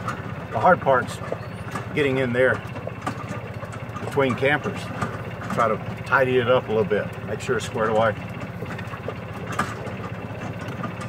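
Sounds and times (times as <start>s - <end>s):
small engine running: 0.0s - 11.0s.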